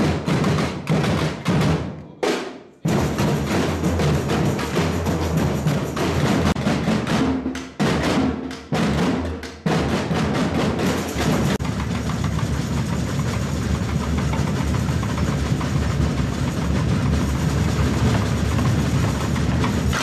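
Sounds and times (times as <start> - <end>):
samba percussion band drumming: 0.0 - 20.0.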